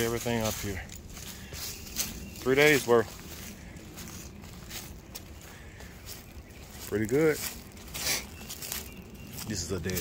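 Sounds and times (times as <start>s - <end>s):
footsteps through dry grass: 0.0s - 10.0s.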